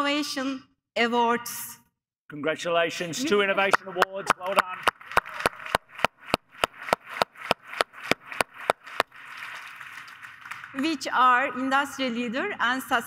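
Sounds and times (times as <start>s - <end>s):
speech: 0.0s - 4.9s, 10.8s - 13.0s
soft applause: 3.4s - 11.2s
hand clapping: 3.6s - 10.9s.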